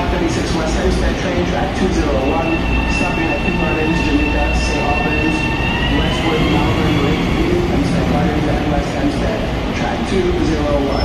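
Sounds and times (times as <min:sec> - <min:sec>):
electric train rumble: 0:00.0 - 0:11.0.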